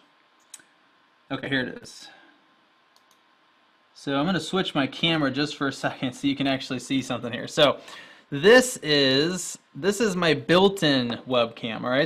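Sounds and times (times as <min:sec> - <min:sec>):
faint click: 0:02.9 - 0:03.3.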